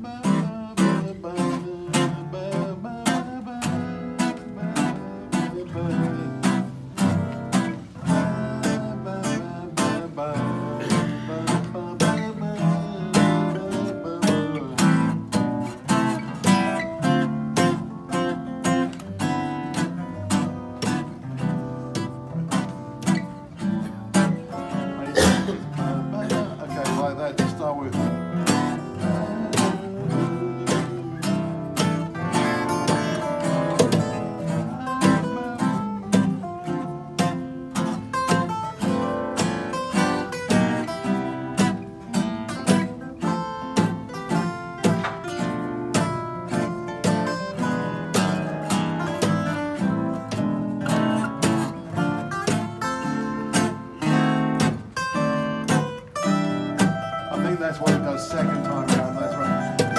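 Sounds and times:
acoustic guitars playing: 0:00.0 - 0:59.9.

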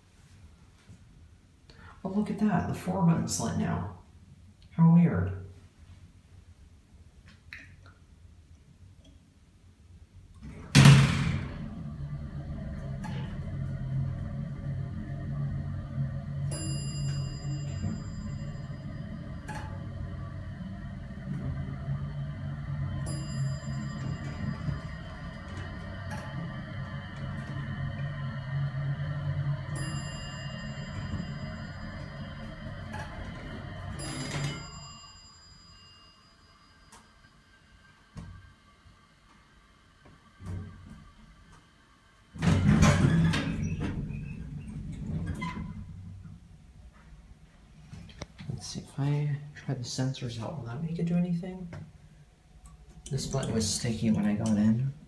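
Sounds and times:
elevator power unit humming: 0:10.1 - 0:55.0.

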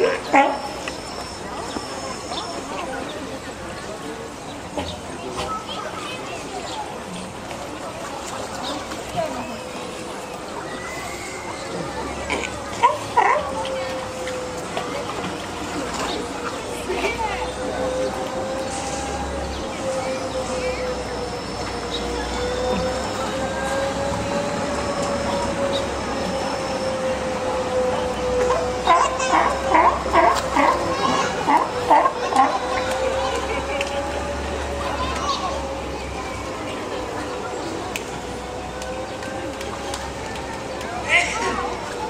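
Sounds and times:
murmur of voices: 0:00.0 - 0:42.0
sea lion call: 0:10.6 - 0:14.6, 0:28.0 - 0:33.4.

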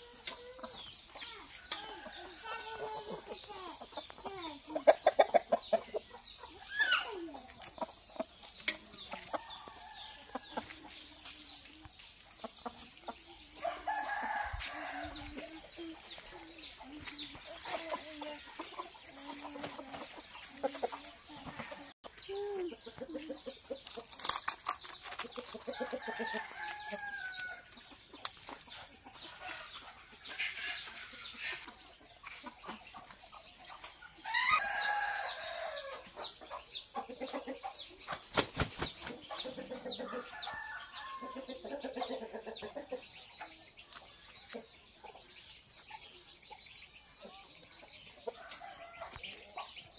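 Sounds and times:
roosters clucking: 0:00.0 - 0:49.9.

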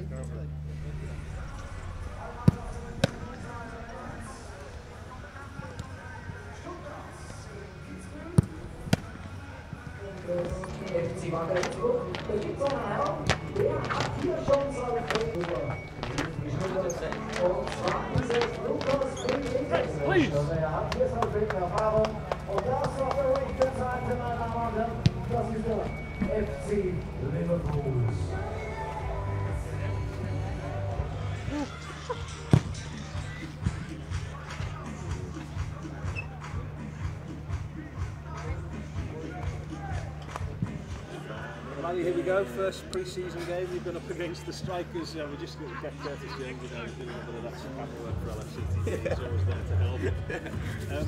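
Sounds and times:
murmur of voices: 0:00.0 - 0:51.0
football being kicked: 0:02.4 - 0:03.2, 0:13.2 - 0:14.3, 0:17.4 - 0:19.6, 0:32.5 - 0:32.9.

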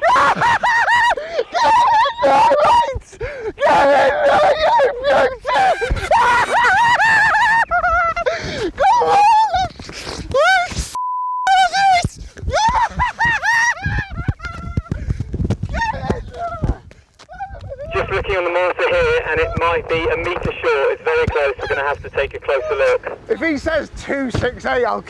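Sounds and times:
men shouting and yelling: 0:00.0 - 0:09.7, 0:11.5 - 0:14.1, 0:15.7 - 0:25.0
censor bleep: 0:11.0 - 0:11.5.

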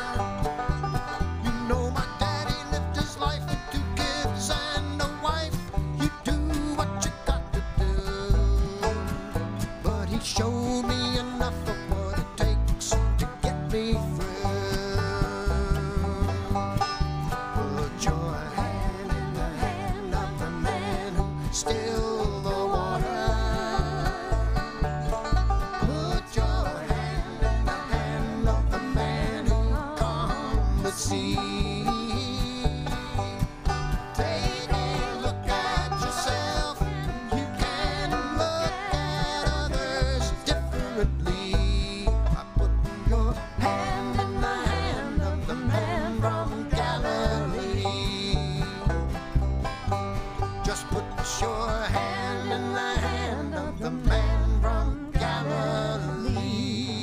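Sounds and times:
bluegrass band playing: 0:00.0 - 0:57.0
upright bass beat: 0:00.0 - 0:57.0.

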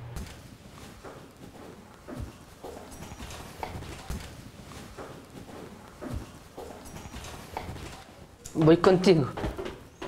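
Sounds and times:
footsteps on hard floor: 0:00.2 - 0:08.0.

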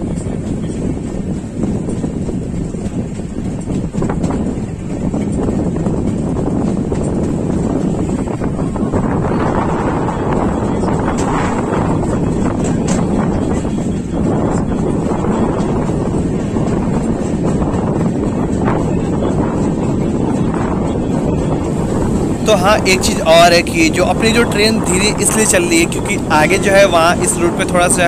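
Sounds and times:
train wheels rumbling on rail: 0:00.0 - 0:28.0
wind buffeting microphone: 0:00.0 - 0:28.0.

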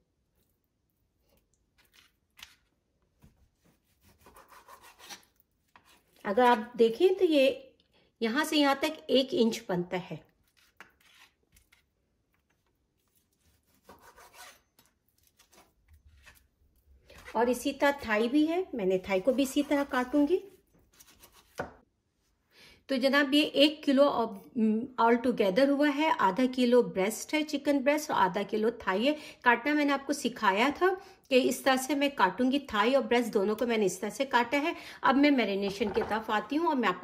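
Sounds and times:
knife slicing raw chicken: 0:01.3 - 0:06.7, 0:10.4 - 0:12.4, 0:13.0 - 0:16.5, 0:19.2 - 0:21.8
knife sawing through raw meat: 0:03.8 - 0:06.1, 0:13.1 - 0:14.7.

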